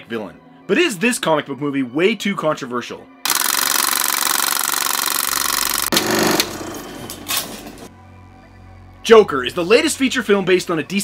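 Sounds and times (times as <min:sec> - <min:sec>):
film projector mechanical rattle: 0:03.3 - 0:07.9.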